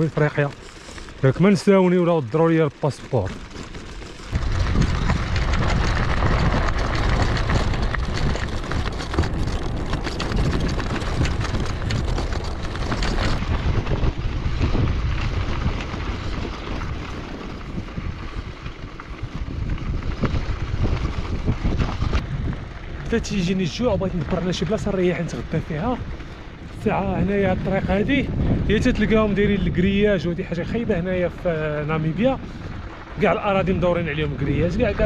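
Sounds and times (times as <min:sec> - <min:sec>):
clicks of loose stones: 0:00.0 - 0:14.1
bicycle tyres crunching on gravel: 0:00.0 - 0:35.0
wind buffeting microphone: 0:03.2 - 0:35.0.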